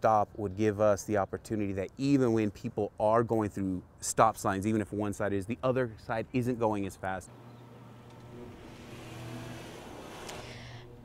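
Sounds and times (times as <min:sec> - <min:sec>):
car driving past: 0:08.1 - 0:11.0.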